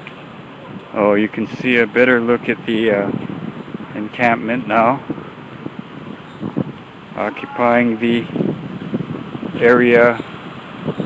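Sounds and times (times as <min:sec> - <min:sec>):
street background noise: 0:00.0 - 0:11.0
wind buffeting microphone: 0:00.0 - 0:11.0.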